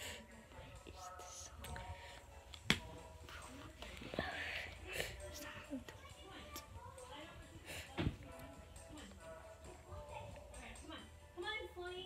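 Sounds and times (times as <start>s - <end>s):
faint video audio from tablet: 0.0s - 12.0s.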